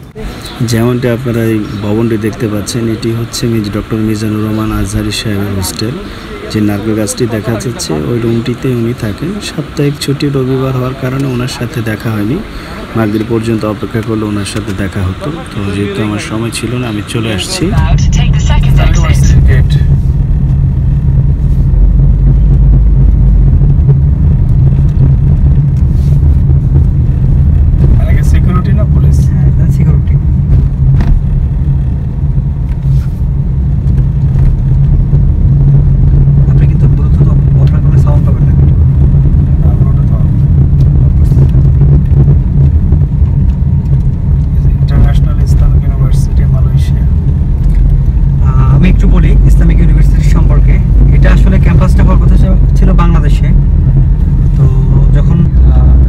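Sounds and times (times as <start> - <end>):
car engine drone: 0.0 - 56.0
tyres on the road: 0.0 - 56.0.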